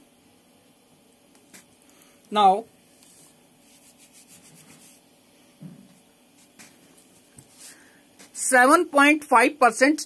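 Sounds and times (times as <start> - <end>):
soft scratchy rubbing: 2.9 - 5.0.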